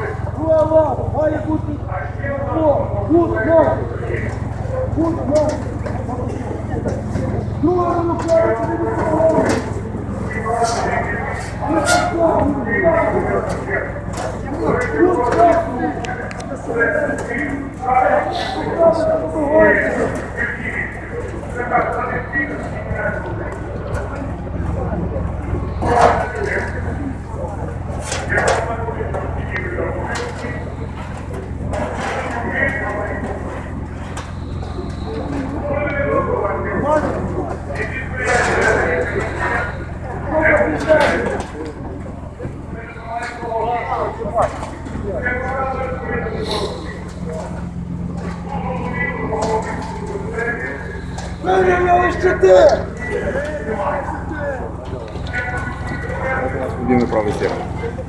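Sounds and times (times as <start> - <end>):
voices talking: 0.0 - 58.0.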